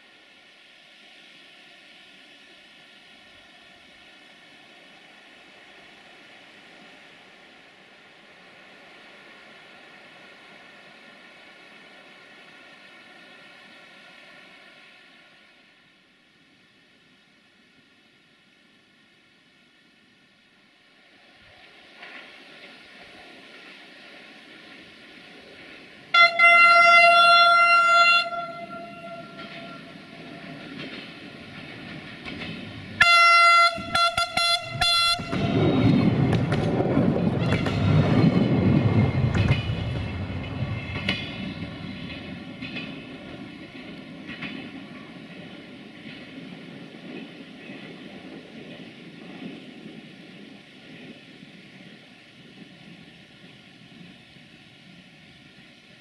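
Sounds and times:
train wheels rumbling on rail: 0.0s - 56.0s
train horn blasts: 26.1s - 30.4s, 33.0s - 36.2s, 37.3s - 38.2s.

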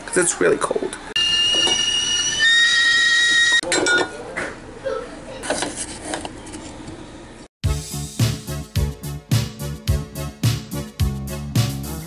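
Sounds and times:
stovetop kettle whistling: 1.2s - 3.6s
kitchenware clinking: 3.6s - 4.2s.

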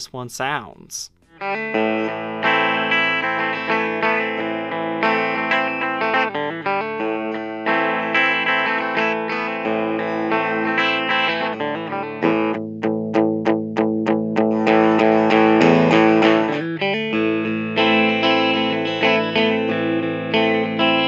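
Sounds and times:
electric guitar picked notes: 1.2s - 21.0s
electric guitar strummed chords: 1.2s - 21.0s.

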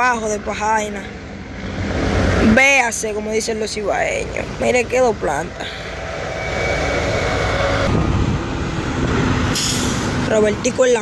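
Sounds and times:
diesel truck passing: 0.0s - 11.0s.

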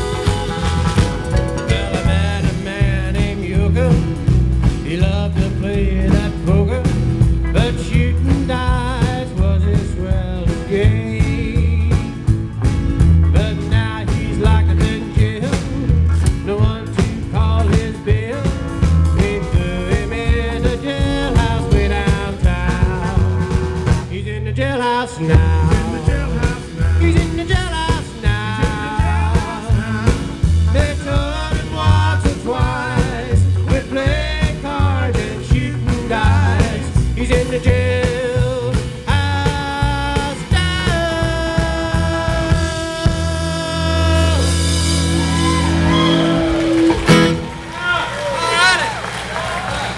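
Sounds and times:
live country band: 0.0s - 49.9s
voices whooping and calling: 45.0s - 49.9s.

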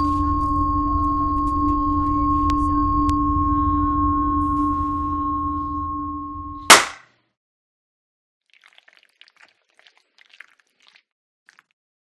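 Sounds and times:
drone of held tones: 0.0s - 6.7s
low rumble: 0.0s - 6.7s.

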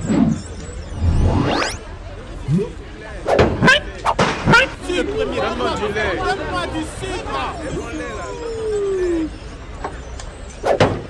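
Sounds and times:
falling tone: 0.0s - 2.8s.

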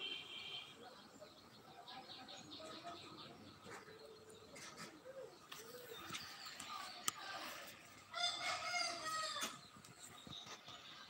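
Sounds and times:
rooster crowing: 8.1s - 9.5s.

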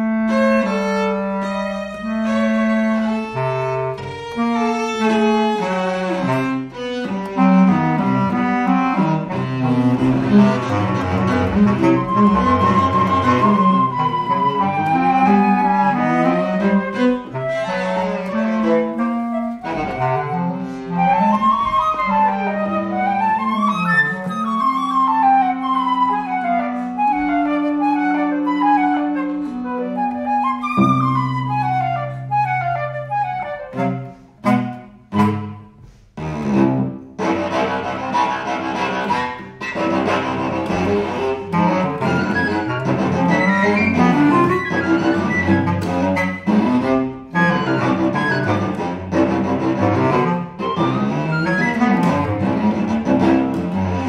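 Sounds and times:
bass clarinet: 0.0s - 54.0s
cello: 0.0s - 54.0s
flute: 6.2s - 35.8s, 37.2s - 53.4s.

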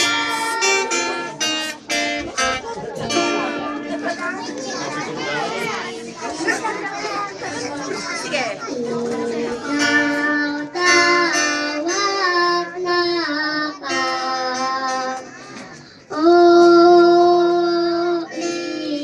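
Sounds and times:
background chatter: 0.0s - 19.0s
children singing together: 0.0s - 19.0s
guitar: 0.0s - 19.0s.

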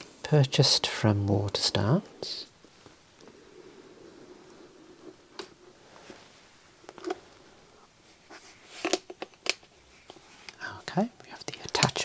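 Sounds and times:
soft whispery voice: 10.5s - 12.0s.

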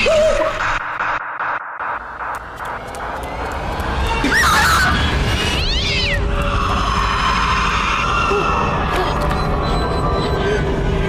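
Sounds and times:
pulsing beat: 0.4s - 4.5s
falling screech: 4.0s - 8.9s.

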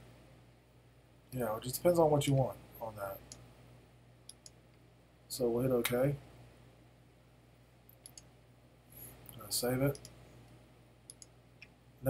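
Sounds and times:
computer mouse clicks: 4.3s - 4.6s, 7.9s - 8.3s, 9.3s - 10.2s, 11.1s - 11.7s.

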